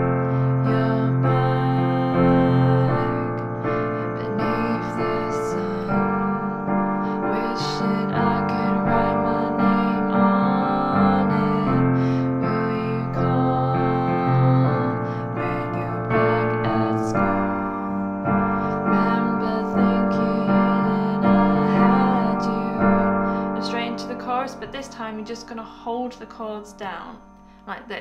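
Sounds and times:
piano chord accompaniment: 0.0 - 28.0.

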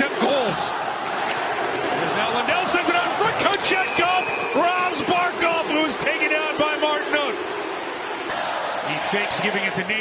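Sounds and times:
arena crowd noise: 0.0 - 10.0
man commentating: 2.0 - 7.4, 8.8 - 10.0.

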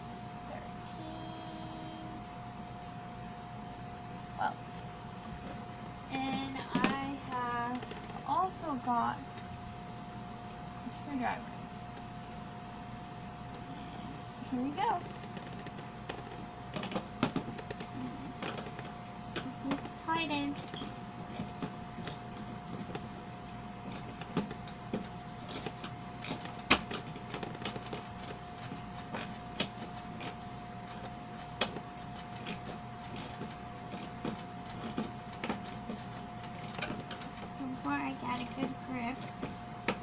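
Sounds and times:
steady hum: 0.0 - 40.0.

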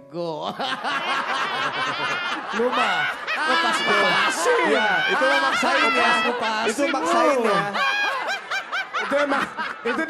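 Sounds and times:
woman laughing: 0.5 - 10.0.

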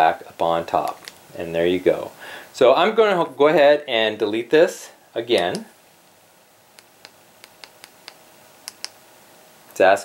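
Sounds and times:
remote buttons clicking: 6.8 - 9.0.

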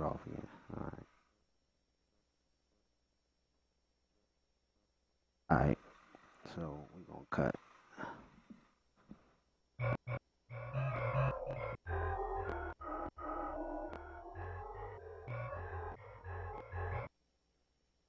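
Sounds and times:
melodic beat loop with bass: 13.9 - 16.0.

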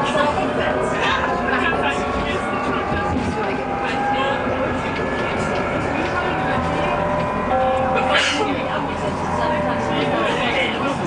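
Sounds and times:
tram rolling rumble: 0.0 - 11.0.

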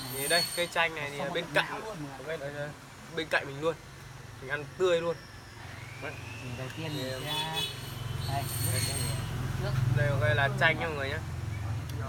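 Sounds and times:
faint voices talking: 0.0 - 12.0
vehicle engine humming: 5.2 - 12.0.

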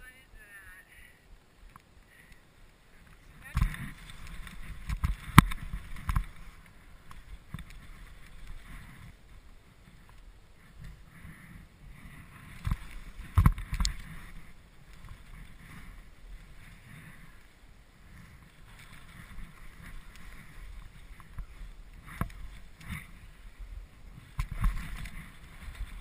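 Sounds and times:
skis hissing through snow: 2.0 - 26.0.

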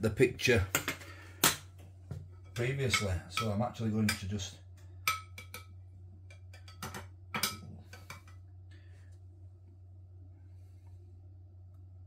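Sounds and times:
steady low hum: 0.0 - 12.0
metal spoon clinking on pan: 5.0 - 8.3.

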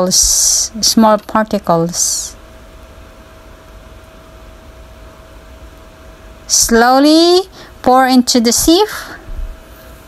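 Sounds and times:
small fan running: 0.0 - 10.0.

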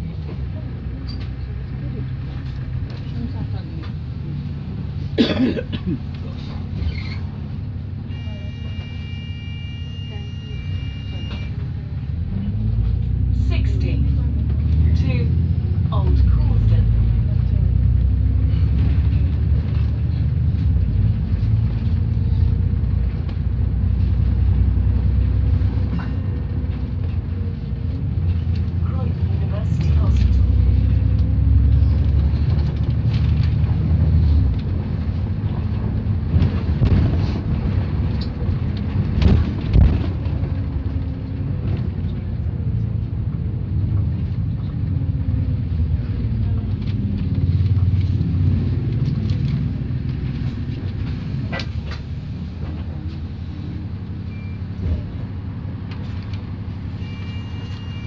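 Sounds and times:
bus engine and road rumble: 0.0 - 58.0
bodywork knocks and rattles: 31.9 - 42.0.

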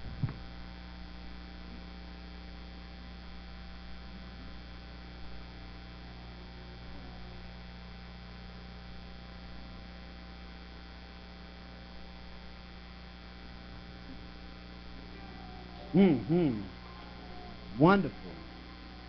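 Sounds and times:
electrical mains hum: 0.0 - 19.0.

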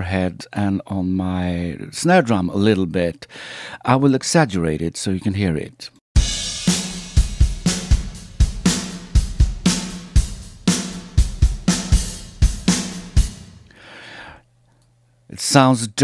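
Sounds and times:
drum kit groove with reverb: 6.2 - 13.8.

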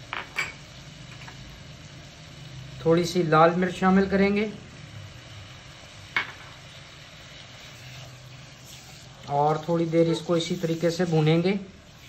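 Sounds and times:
chicken sizzling in wok: 0.0 - 12.0.

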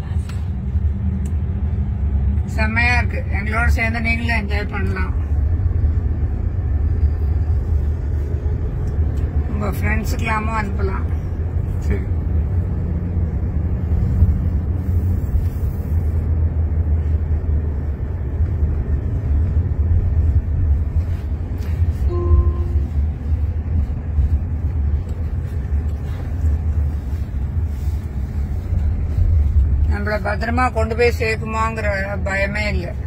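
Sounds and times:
tyres rumbling on road: 0.0 - 33.0
brief tone: 22.0 - 22.9.

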